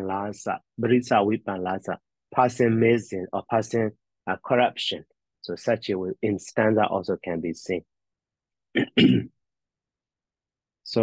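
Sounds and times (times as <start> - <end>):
man clearing his throat: 8.7 - 9.4.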